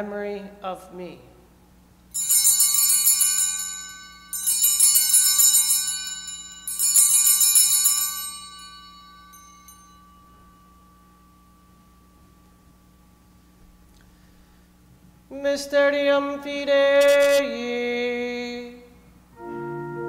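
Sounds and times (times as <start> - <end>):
altar bells jingling: 2.1 - 13.6.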